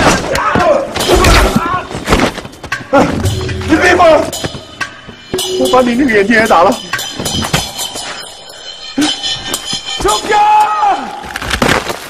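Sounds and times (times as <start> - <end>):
background music: 0.7 - 11.6
sharp hits: 2.7 - 11.8.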